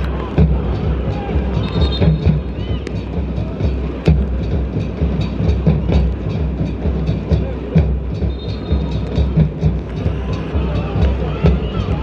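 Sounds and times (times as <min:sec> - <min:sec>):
steady drum beat: 0:00.0 - 0:12.0.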